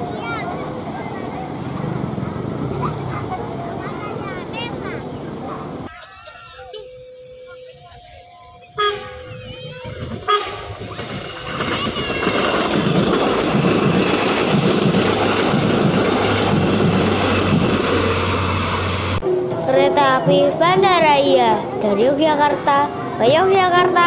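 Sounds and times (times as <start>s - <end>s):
train rumbling past: 0.0s - 5.9s, 6.9s - 24.0s.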